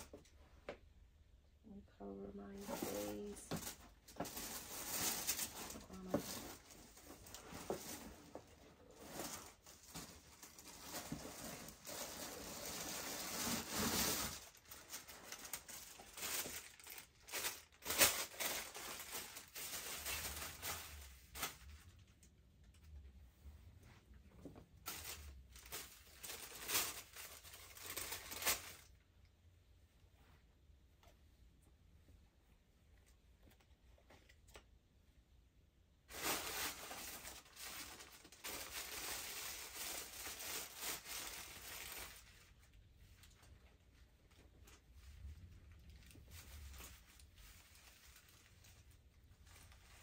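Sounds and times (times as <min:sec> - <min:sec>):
clothes and paper rustling: 0:00.0 - 0:50.0.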